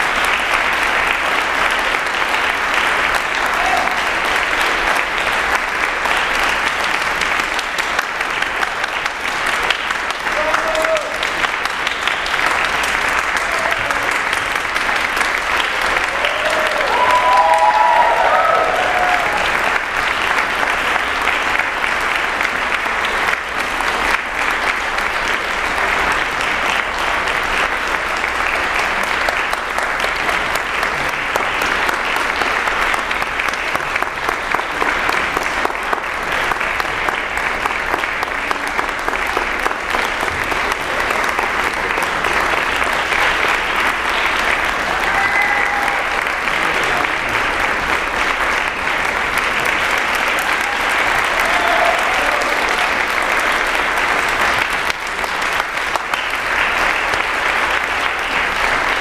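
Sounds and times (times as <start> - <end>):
audience applauding: 0.0 - 59.0
short cheers: 3.4 - 4.1, 10.3 - 11.3, 16.1 - 19.6, 44.9 - 46.4, 50.4 - 53.0.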